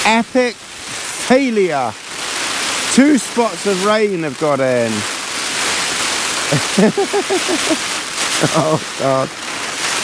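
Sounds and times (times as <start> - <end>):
rain on a tarp: 0.0 - 10.0
man laughing: 6.4 - 9.3.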